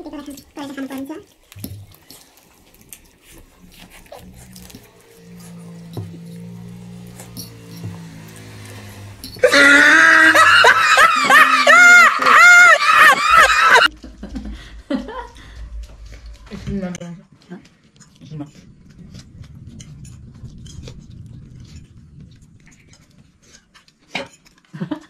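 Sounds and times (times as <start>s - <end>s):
faint low sustained music notes: 3.5s - 9.4s.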